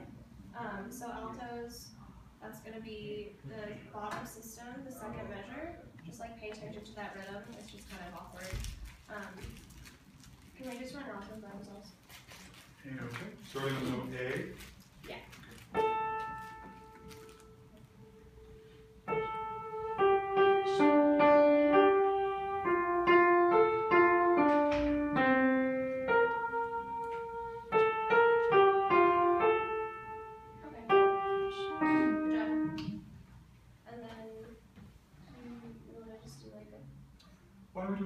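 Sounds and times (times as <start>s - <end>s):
upright piano playing chords: 15.8s - 33.1s.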